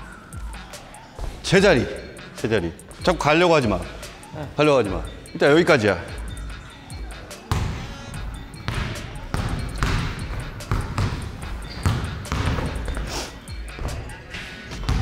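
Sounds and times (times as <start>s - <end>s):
background music: 0.0s - 15.0s
basketball dribbled on hardwood: 8.7s - 13.1s.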